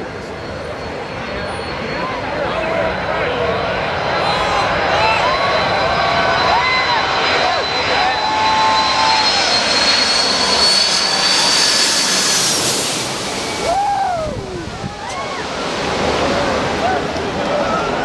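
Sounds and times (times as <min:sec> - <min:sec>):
jet plane passing overhead: 0:00.0 - 0:18.0.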